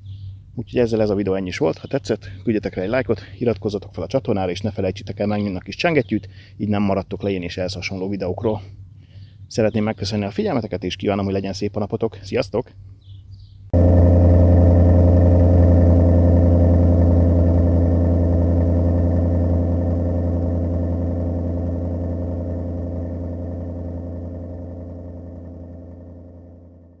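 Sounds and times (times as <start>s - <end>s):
engine droning steadily: 0.0s - 13.0s, 13.7s - 27.0s.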